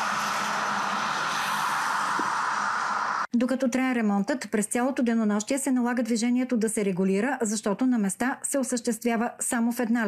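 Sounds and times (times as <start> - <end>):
road traffic noise: 0.0 - 3.3.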